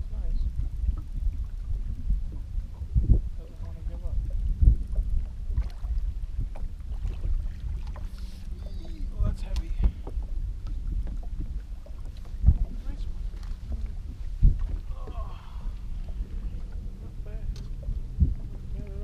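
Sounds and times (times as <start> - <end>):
boat engine rumble and hum: 0.0 - 19.0
wind on microphone: 0.0 - 19.0.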